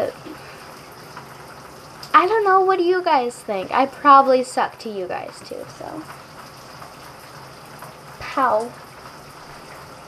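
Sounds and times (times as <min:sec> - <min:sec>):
shower water running: 0:00.0 - 0:10.0.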